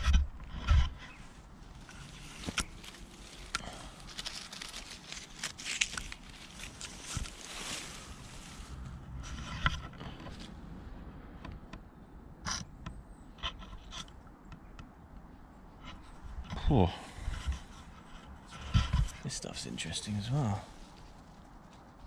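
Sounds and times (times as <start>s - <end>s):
clicks and crunches on wood chips: 0.0s - 10.6s
leaves rustling: 0.6s - 10.6s, 16.0s - 22.0s.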